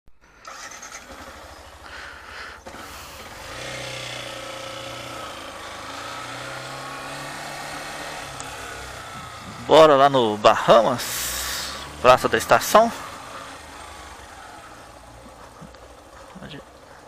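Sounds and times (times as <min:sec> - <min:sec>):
motorcycle engine: 0:00.2 - 0:17.0.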